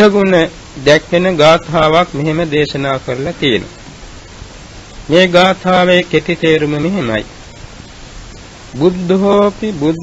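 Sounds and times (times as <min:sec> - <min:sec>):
man preaching: 0:00.0 - 0:03.8, 0:05.1 - 0:07.3, 0:08.7 - 0:10.0
recording hiss: 0:00.0 - 0:10.0.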